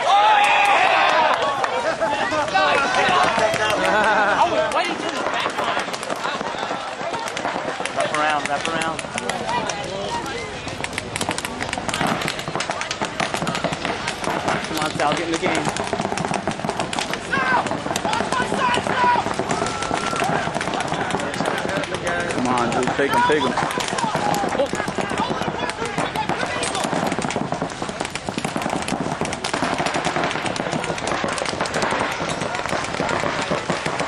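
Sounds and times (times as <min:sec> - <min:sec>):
people shouting: 0:00.0 - 0:34.0
paintball markers firing: 0:02.2 - 0:34.0.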